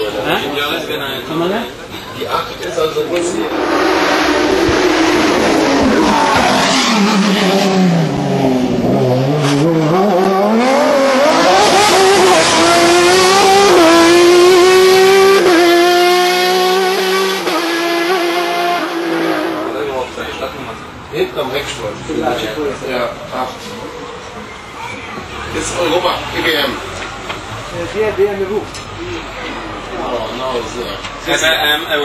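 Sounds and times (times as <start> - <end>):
racing car engine revving: 3.0 - 20.8.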